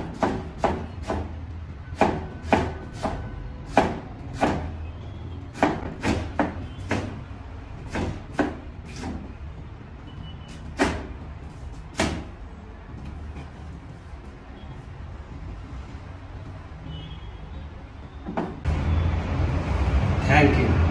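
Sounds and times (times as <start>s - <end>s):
knife chopping on cutting board: 0.0s - 1.3s, 2.0s - 4.7s, 5.5s - 7.2s, 7.9s - 9.3s, 10.6s - 12.4s
knock: 18.2s - 18.6s.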